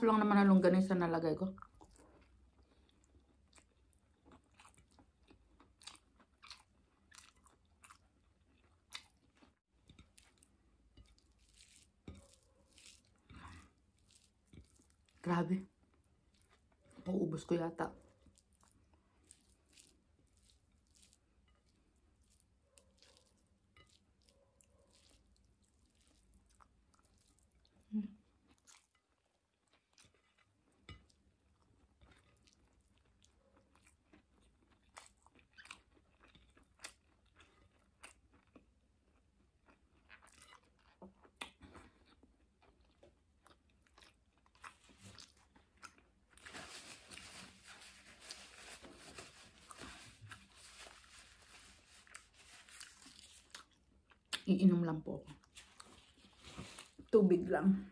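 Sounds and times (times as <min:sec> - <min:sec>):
chewing food: 0:01.5 - 0:17.2, 0:17.8 - 0:57.2.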